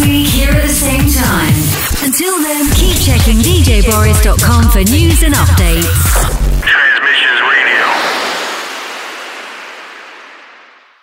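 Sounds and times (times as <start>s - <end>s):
rushing white-noise sweep: 7.6s - 11.0s.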